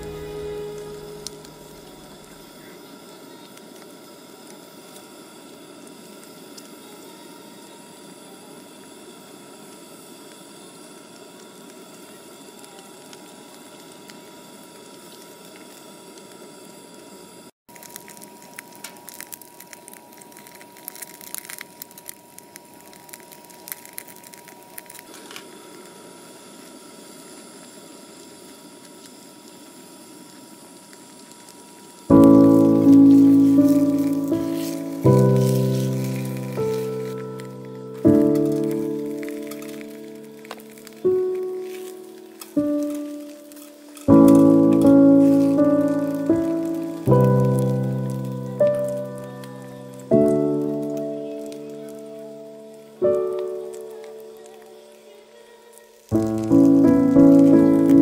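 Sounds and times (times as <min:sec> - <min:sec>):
charcoal crackling and popping: 0:00.0 - 0:58.0
gas stove hissing: 0:00.0 - 0:58.0.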